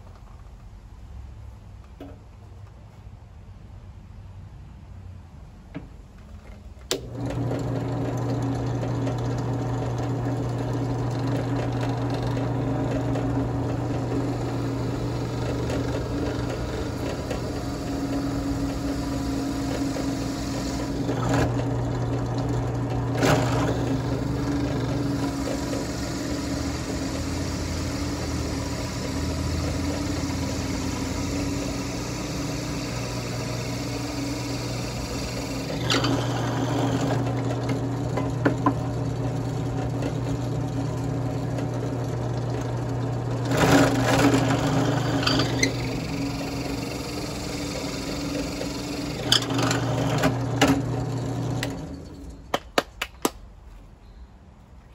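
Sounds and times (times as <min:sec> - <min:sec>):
drill press motor running: 0:06.9 - 0:52.4
drill bit cutting wood: 0:07.0 - 0:52.1.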